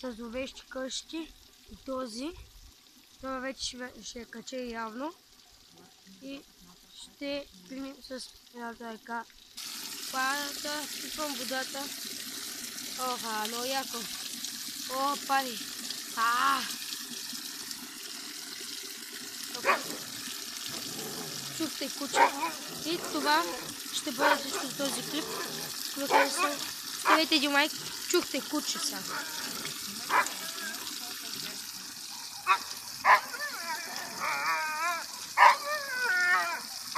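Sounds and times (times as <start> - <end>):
water pouring into a cup: 9.2 - 36.9
dog bark: 19.6 - 20.1, 22.1 - 23.2, 24.2 - 24.8, 25.4 - 27.3, 30.1 - 30.4, 32.3 - 33.5, 35.4 - 35.8
dog howling: 19.6 - 20.1, 22.1 - 27.2, 29.0 - 30.8, 32.4 - 36.8.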